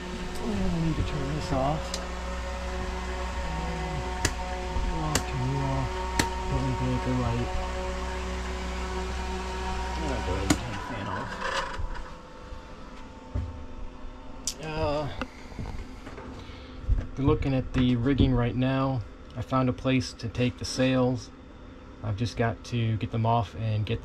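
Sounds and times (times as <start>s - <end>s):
low machine hum: 0.0s - 24.0s.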